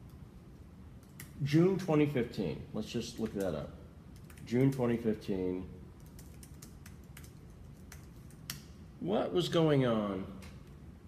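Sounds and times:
faint keyboard typing: 3.2s - 5.1s, 6.0s - 8.7s.

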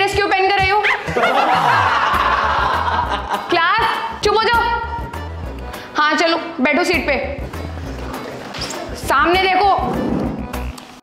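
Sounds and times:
background music: 0.0s - 11.0s
young people laughing: 0.9s - 3.6s.

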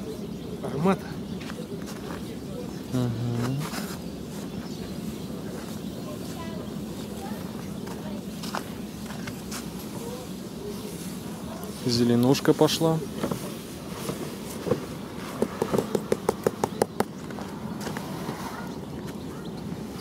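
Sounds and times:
person saying uh-huh: 2.9s - 3.6s.

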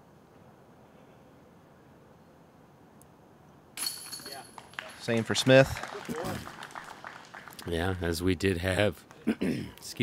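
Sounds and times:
disc hitting metal chains: 3.8s - 4.6s.

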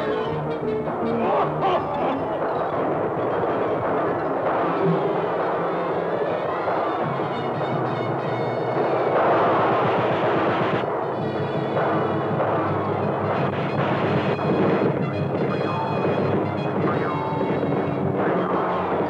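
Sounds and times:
orchestral cartoon music: 0.0s - 19.0s
machine-gun fire rattle: 8.5s - 16.3s.

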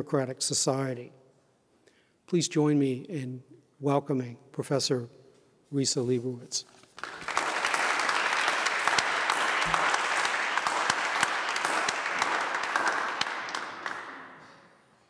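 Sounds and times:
audience applauding: 7.0s - 14.6s.

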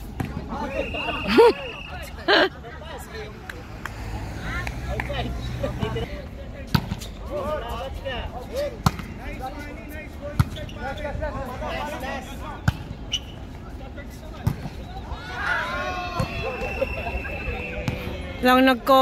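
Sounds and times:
players calling: 0.2s - 19.0s.

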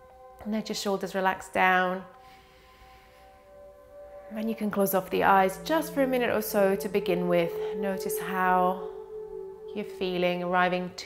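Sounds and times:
faint music of long-held tones: 0.0s - 11.0s.

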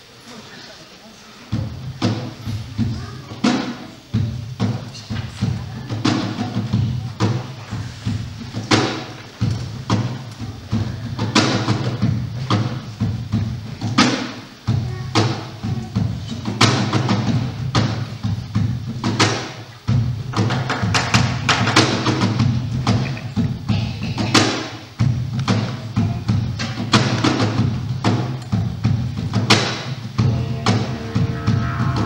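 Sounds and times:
hand-struck percussion hits: 26.6s - 32.0s
didgeridoo drone: 30.2s - 32.0s.

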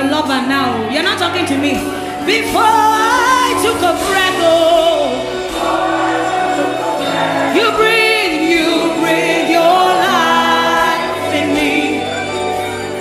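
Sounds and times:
woman singing with vibrato: 0.0s - 12.6s
choir singing: 2.5s - 13.0s.

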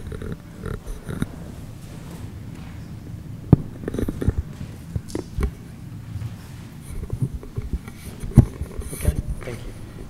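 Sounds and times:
microphone handling rumble: 0.0s - 10.0s.

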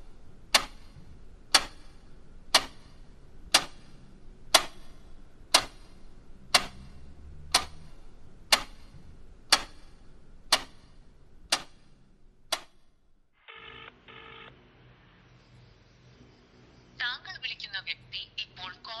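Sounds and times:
wall clock ticking: 0.0s - 13.1s
telephone ringing: 13.4s - 14.5s.

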